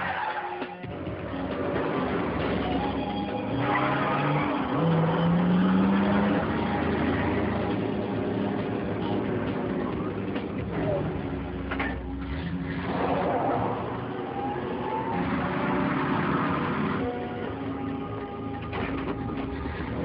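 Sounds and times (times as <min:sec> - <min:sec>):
car engine revving: 0:00.8 - 0:20.0.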